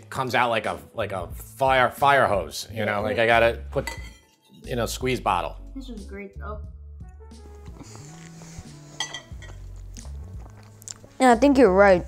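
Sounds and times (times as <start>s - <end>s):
quiet background music: 0.0s - 12.0s
fork clinking and scraping a bowl: 3.8s - 4.7s, 9.0s - 9.8s.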